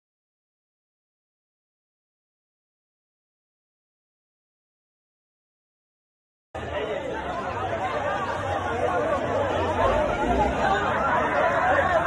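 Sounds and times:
crowd chatter: 0:06.6 - 0:12.0.

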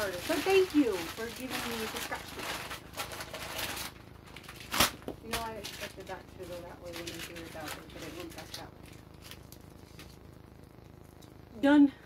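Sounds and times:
crumpled tape rustling: 0:00.0 - 0:11.4.

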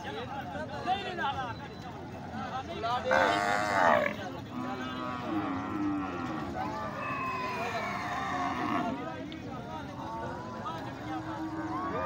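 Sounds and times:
cattle mooing: 0:03.1 - 0:06.5.

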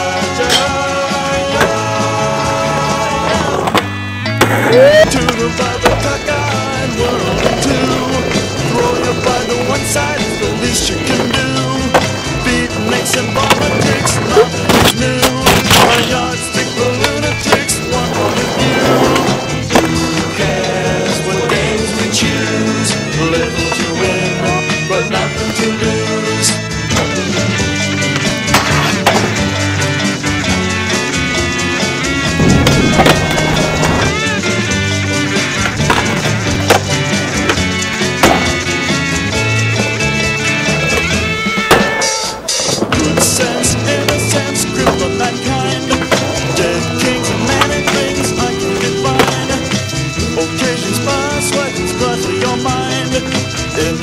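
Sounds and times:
music track: 0:00.0 - 0:54.0
skateboard wheels rolling on pavement: 0:00.0 - 0:54.0
skateboard clacks: 0:00.4 - 0:54.0
skateboard knocks: 0:35.6 - 0:38.7, 0:40.6 - 0:49.9.

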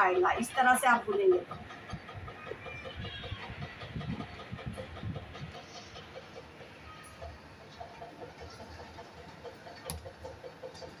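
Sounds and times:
gas burner flame rumble: 0:00.0 - 0:11.0.

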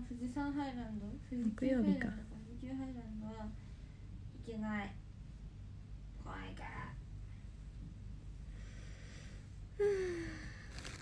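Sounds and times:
low steady hum: 0:00.0 - 0:11.0
woman whispering: 0:06.2 - 0:07.0.

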